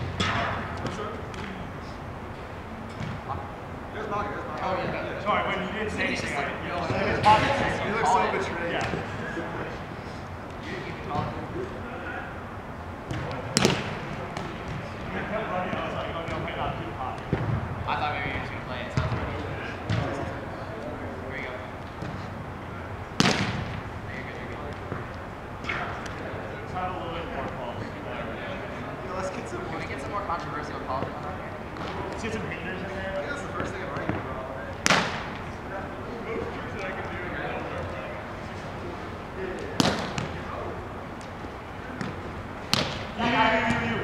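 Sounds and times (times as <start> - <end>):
ball hits: 0.0 - 1.6, 13.1 - 16.5, 18.9 - 20.2, 23.2 - 23.9, 33.6 - 35.5, 39.6 - 40.6, 41.9 - 43.2
players' voices in indoor hall: 0.0 - 44.0
sharp ball smacks: 13.1 - 14.7, 23.2 - 23.8, 34.8 - 35.4, 39.8 - 40.4, 42.0 - 43.1.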